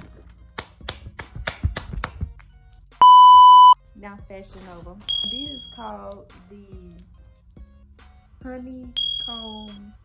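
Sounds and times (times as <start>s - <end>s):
electronic censor bleep: 3.0s - 3.8s.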